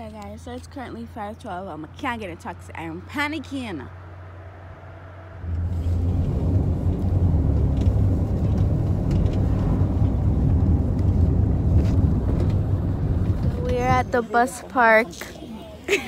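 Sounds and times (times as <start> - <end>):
car engine and road rumble: 0.0 - 15.9.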